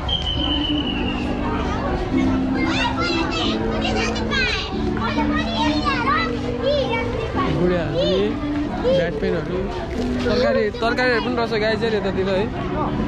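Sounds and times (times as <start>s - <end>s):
children calling and chattering: 0.0s - 13.0s.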